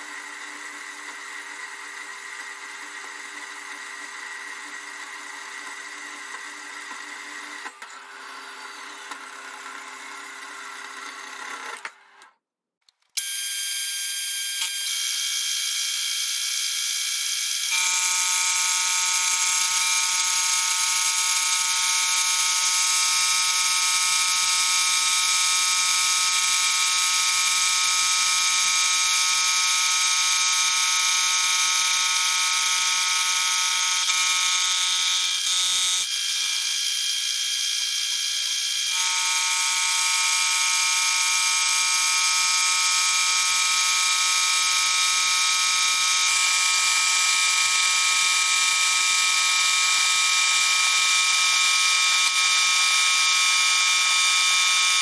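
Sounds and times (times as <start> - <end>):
milling machine whine: 17.4 - 55.0.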